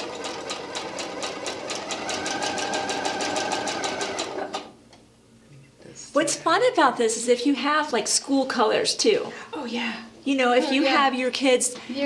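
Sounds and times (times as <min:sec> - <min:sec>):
sewing machine running: 0:00.0 - 0:04.7.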